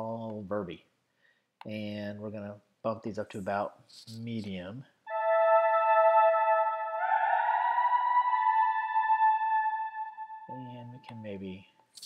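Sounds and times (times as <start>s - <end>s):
synthesizer lead with reverb: 5.1s - 11.0s.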